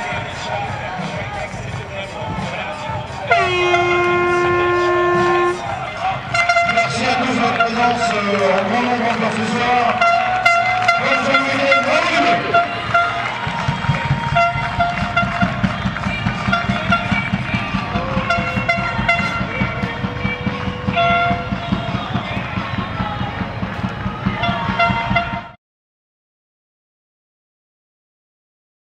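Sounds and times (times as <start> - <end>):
horns tooting: 0.0 - 25.6.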